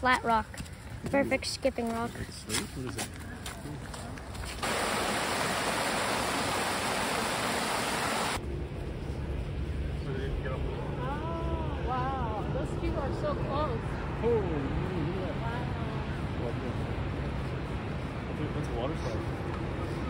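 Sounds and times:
water rushing: 4.6s - 8.4s.

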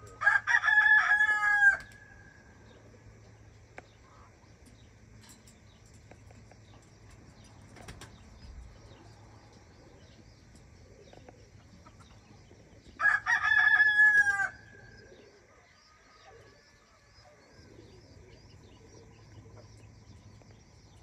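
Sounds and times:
small birds chirping: 1.8s - 13.7s, 14.3s - 21.0s.

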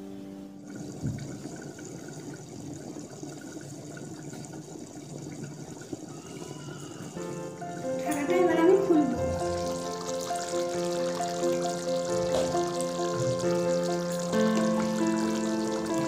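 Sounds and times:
curry bubbling in covered pan: 0.6s - 7.5s, 8.1s - 16.0s
background music: 7.2s - 16.0s.

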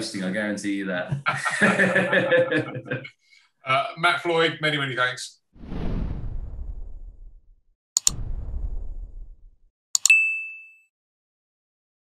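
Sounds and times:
low whoosh: 5.6s - 9.7s
double mouse click: 8.0s - 8.2s
notification bell ding: 10.0s - 10.9s.

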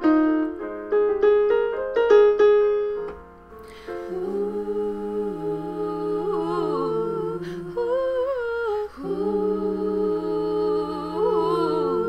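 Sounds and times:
woman humming in harmony: 4.0s - 12.0s.

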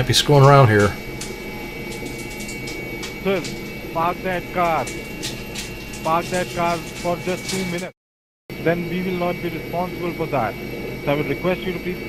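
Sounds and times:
faint clicks: 0.0s - 7.9s
phone line hum and hiss: 0.0s - 7.9s, 8.5s - 12.0s
thin steady high tone: 0.0s - 7.9s, 8.6s - 12.0s.

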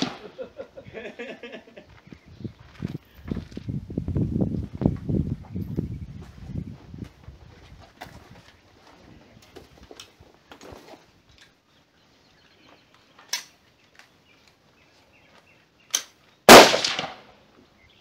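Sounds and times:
rifle shots: 0.0s - 0.3s, 16.5s - 17.3s
loud close rifle shot with echo: 0.0s - 0.4s, 16.5s - 17.3s.

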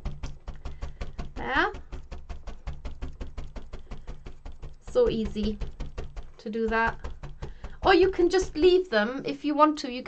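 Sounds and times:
felting needles stabbing: 0.0s - 8.9s.

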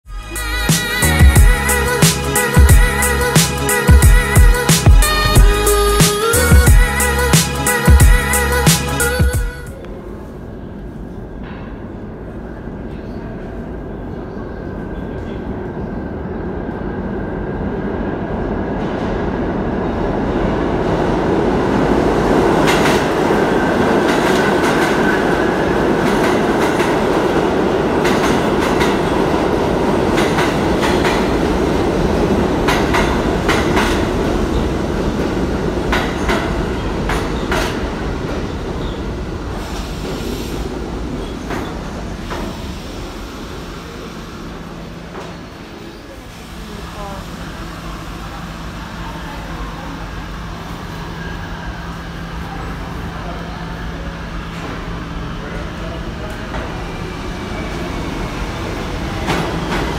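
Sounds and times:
subway train rumble: 0.0s - 59.9s.

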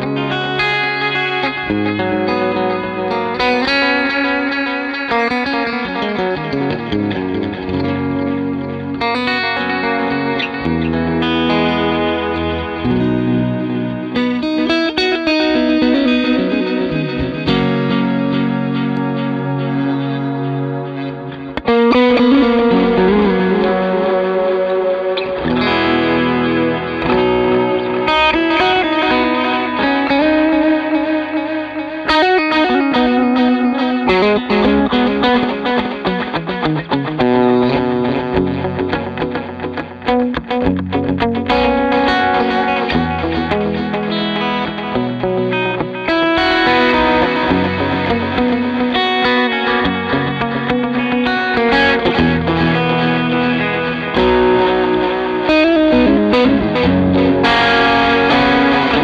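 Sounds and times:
electric guitar with echo: 0.0s - 59.0s.

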